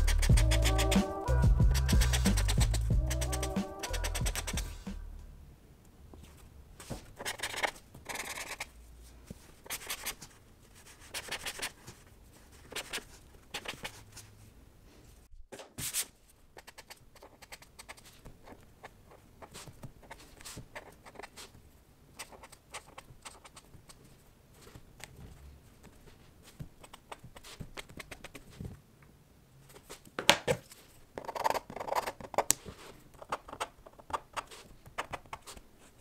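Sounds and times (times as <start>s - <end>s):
pen ticking on paper: 0.0s - 1.0s, 1.7s - 4.7s
pen scratching on paper: 0.0s - 4.9s, 7.0s - 8.7s, 9.6s - 10.2s, 10.8s - 11.8s, 12.5s - 14.0s, 16.6s - 21.5s, 22.2s - 24.0s, 31.2s - 32.5s.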